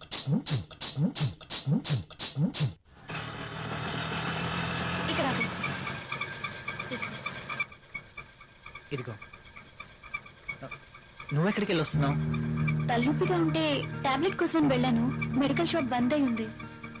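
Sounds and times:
rhythmic comic sound effect: 0.0s - 2.8s, 11.4s - 17.0s
small engine running: 3.0s - 17.0s
low sliding tones: 11.3s - 17.0s.

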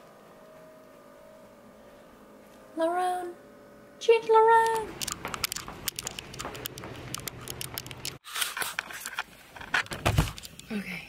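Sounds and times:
footsteps going down stairs: 4.8s - 8.2s.

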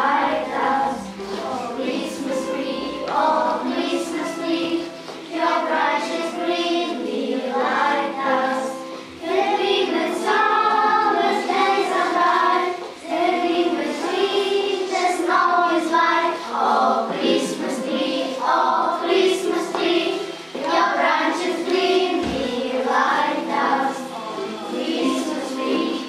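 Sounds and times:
children singing: 0.0s - 26.0s.

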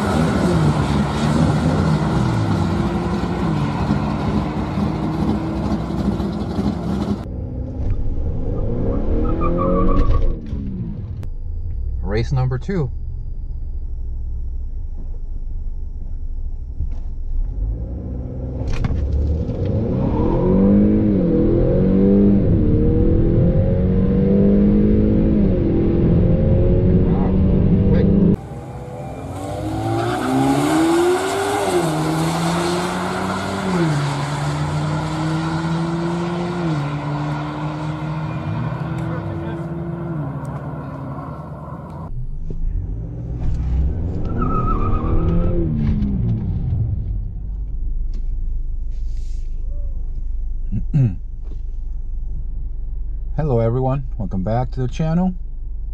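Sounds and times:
race car engines revving: 0.0s - 11.3s, 17.4s - 49.5s
car engine accelerating with upshifts: 0.0s - 12.8s, 13.5s - 53.2s.

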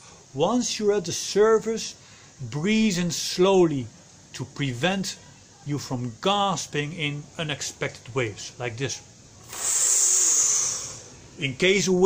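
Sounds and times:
man inhaling through lips: 9.4s - 11.2s.

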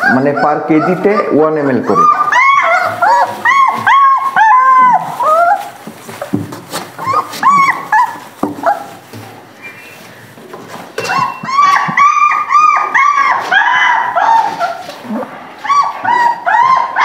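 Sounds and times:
puppy yelping: 0.0s - 9.1s, 11.0s - 17.0s.

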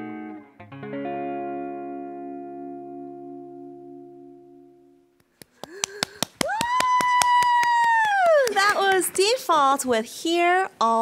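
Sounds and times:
electric and bass guitar chord: 0.0s - 5.1s
woman clapping: 5.2s - 9.4s
woman cheering: 5.7s - 9.4s.

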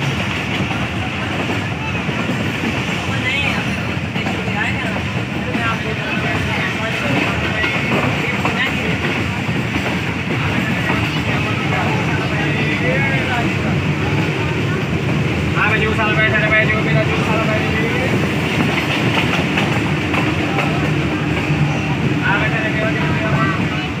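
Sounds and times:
train wheels rumbling on rails: 0.0s - 24.0s.

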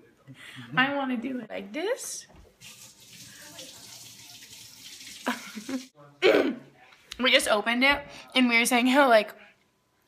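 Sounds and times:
tap water running into sink: 2.6s - 5.9s.

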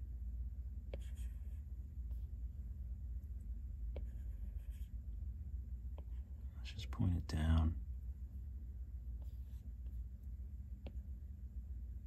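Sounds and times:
steady low hum: 0.0s - 12.0s
stylus scratching across screen: 0.9s - 1.7s, 4.0s - 5.0s.

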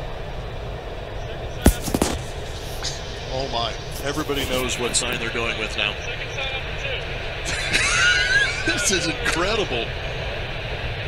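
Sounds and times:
low background hum: 0.0s - 11.0s
sharp smack: 1.7s - 4.7s.

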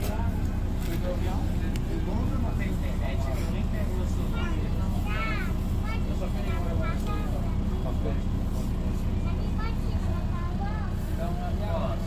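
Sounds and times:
bus engine rumble: 0.0s - 12.0s
faint voices: 0.0s - 12.0s.

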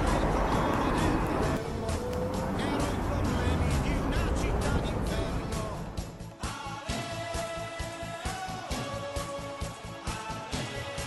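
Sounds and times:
cars passing: 0.0s - 6.3s
music: 0.0s - 11.0s.

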